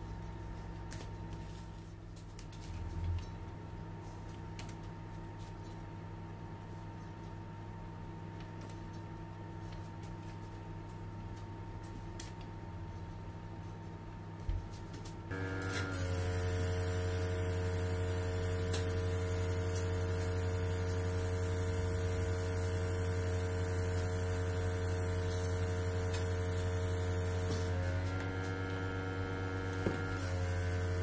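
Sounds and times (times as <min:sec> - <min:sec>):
compressor electric hum: 0:00.0 - 0:31.0.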